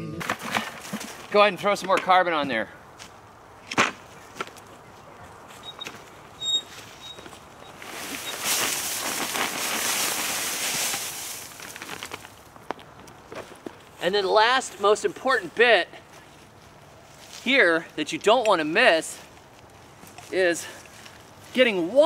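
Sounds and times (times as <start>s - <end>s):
compost pouring from a sack: 7.8s - 12.4s.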